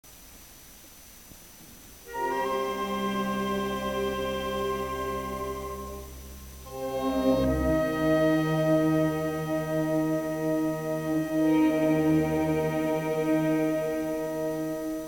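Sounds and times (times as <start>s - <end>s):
orchestra playing held chords: 2.1s - 15.0s.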